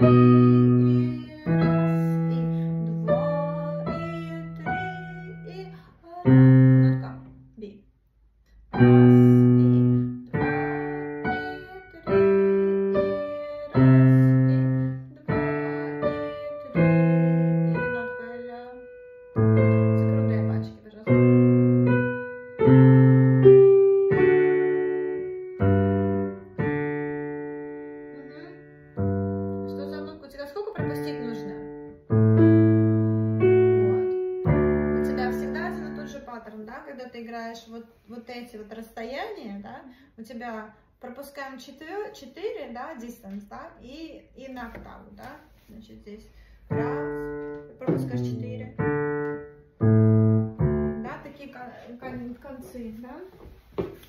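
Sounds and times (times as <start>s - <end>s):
slow digital piano minuet: 0.0s - 7.6s, 8.5s - 36.5s, 46.5s - 52.8s.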